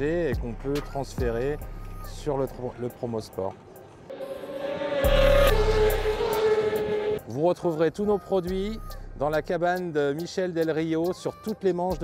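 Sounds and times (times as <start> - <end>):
background music with low bass: 0.0 - 3.5, 5.0 - 12.0
race motorcycles passing by: 4.1 - 7.3.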